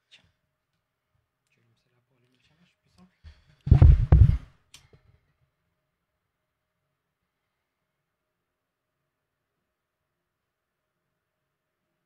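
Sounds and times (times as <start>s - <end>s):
microphone handling rustle: 3.7s - 4.5s.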